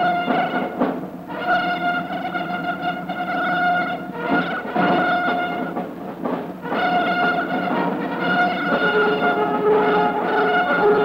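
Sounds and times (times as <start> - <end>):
orchestral brass sustained chord: 0.0 - 5.7, 6.6 - 11.0.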